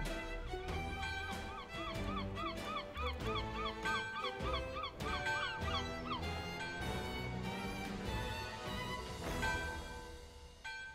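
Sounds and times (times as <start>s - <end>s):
gulls calling: 0.0s - 9.2s.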